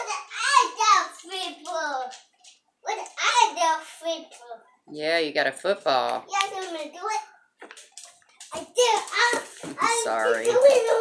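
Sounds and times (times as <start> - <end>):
boy talking: 0.0 - 4.8, 6.3 - 7.4, 8.5 - 11.0.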